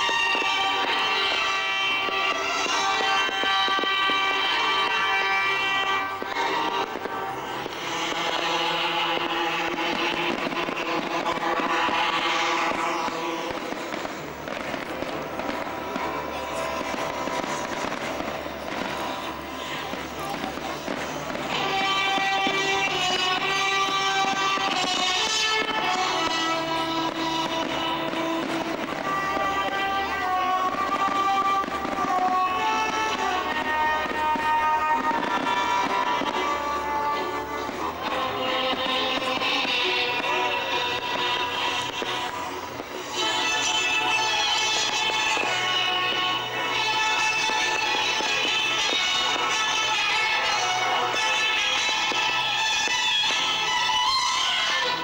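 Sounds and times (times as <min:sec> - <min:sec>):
fireworks exploding: 0:00.0 - 0:55.0
music playing: 0:00.0 - 0:55.0.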